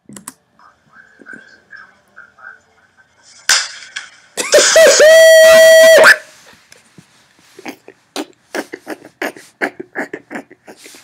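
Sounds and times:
loud high-pitched scream: 4.5 - 6.3.

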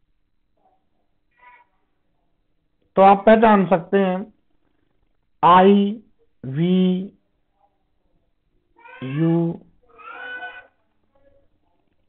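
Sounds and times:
man speaking drawn-out words: 3.0 - 4.3, 5.4 - 7.2, 9.0 - 9.7.

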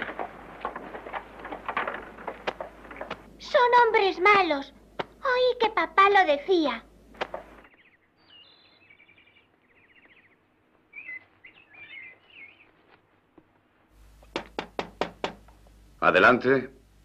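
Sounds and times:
birds chirping: 0.0 - 13.2
knocks on a door: 14.3 - 15.5.

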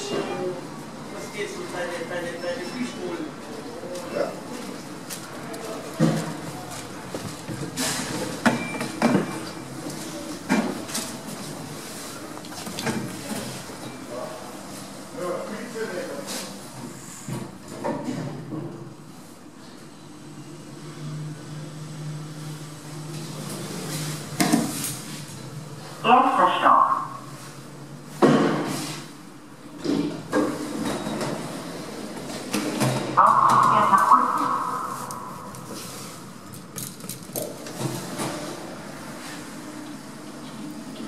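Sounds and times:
lift doors sliding hum: 18.8 - 26.0, 26.7 - 41.0
lift machine humming: 33.2 - 36.6.

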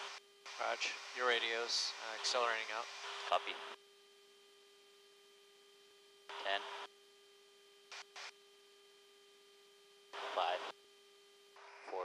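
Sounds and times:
intercom electrical hum: 0.0 - 12.0.

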